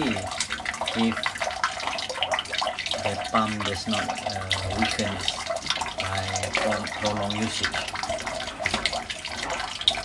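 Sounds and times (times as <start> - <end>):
water splashing into fish tank: 0.0 - 10.0.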